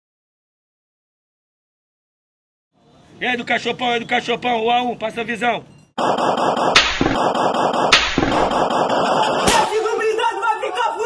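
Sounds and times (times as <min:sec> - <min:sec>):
rapid automatic gunfire: 0:06.0 - 0:10.0.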